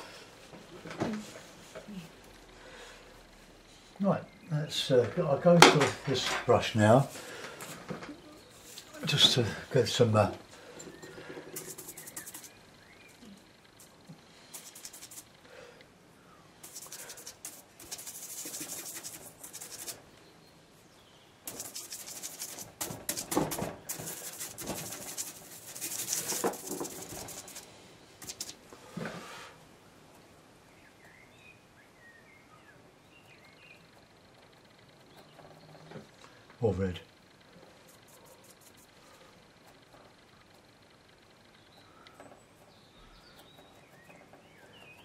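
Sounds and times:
bristle brush scrubbing on board: 0:11.5 - 0:12.6, 0:14.5 - 0:15.3, 0:16.6 - 0:20.0, 0:21.5 - 0:28.6, 0:37.9 - 0:38.9.

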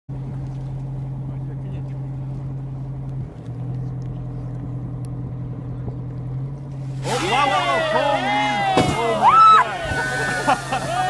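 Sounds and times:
boat engine humming: 0:00.1 - 0:11.0.

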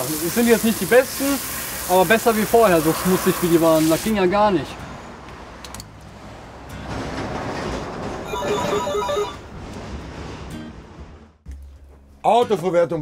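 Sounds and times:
telephone ringing: 0:08.2 - 0:09.4.

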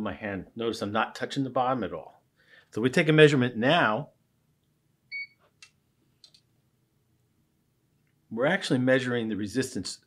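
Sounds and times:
short electronic beep: 0:05.1 - 0:05.4.

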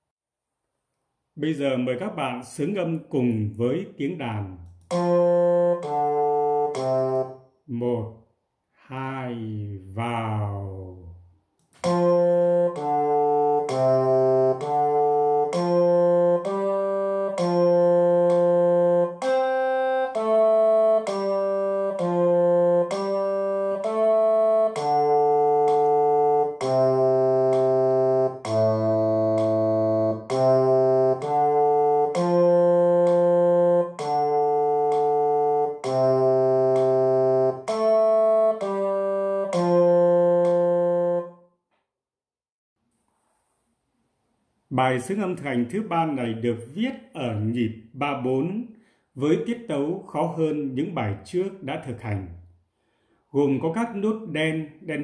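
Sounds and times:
slow bass melody: 0:04.2 - 0:08.1, 0:09.6 - 0:41.4.

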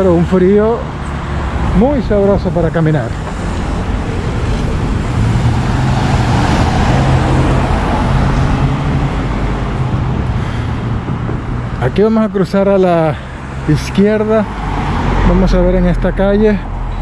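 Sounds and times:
vehicle engine and tyre noise: 0:00.0 - 0:17.0.

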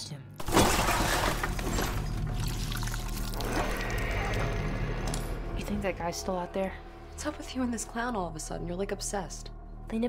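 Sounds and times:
low steady drone: 0:02.0 - 0:10.0.

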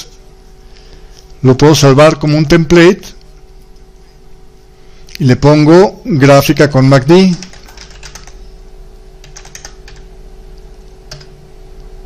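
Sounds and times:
faint steady hum: 0:00.0 - 0:12.0
computer keyboard keystrokes: 0:07.3 - 0:08.4, 0:09.2 - 0:10.0, 0:11.1 - 0:11.4.

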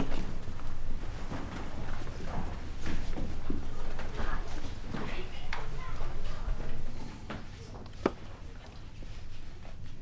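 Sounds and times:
children's footsteps on hard floor: 0:00.0 - 0:10.0.

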